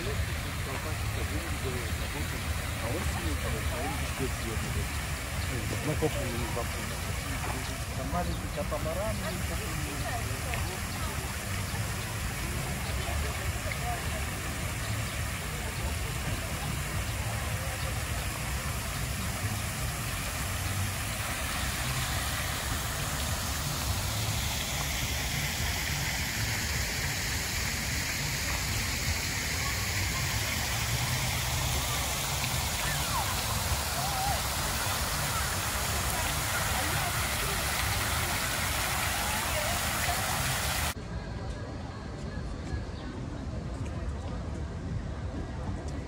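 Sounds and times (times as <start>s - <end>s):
fountain water splashing: 0.0s - 41.0s.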